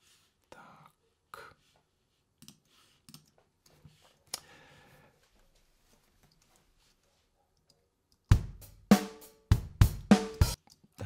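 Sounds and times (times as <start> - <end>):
soft breathing: 0.0 - 7.1
computer mouse clicks: 2.4 - 3.4.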